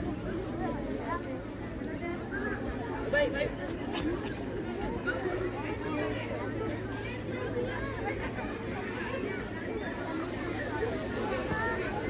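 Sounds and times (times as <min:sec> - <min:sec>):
murmur of many voices: 0:00.0 - 0:12.0.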